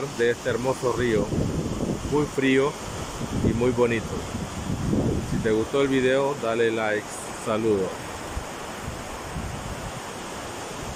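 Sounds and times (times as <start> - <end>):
river rushing over rapids: 0.0 - 10.9
wind gusts on microphone: 0.0 - 10.9.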